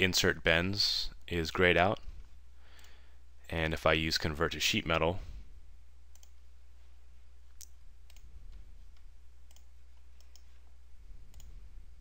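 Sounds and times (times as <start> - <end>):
low steady hum: 0.0 - 12.0
computer mouse clicking: 6.1 - 6.4, 7.6 - 8.3, 8.9 - 10.7, 11.3 - 11.6.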